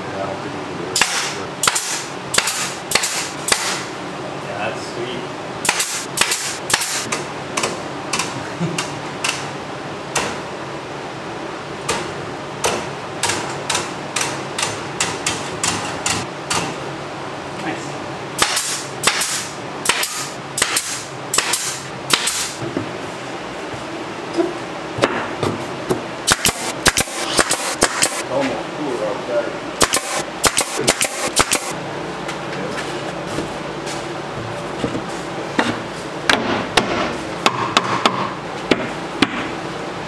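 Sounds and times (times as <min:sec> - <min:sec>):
staple gun firing: 0:01.0 - 0:03.8, 0:05.6 - 0:07.1, 0:18.4 - 0:22.5, 0:26.3 - 0:28.2, 0:29.8 - 0:31.7.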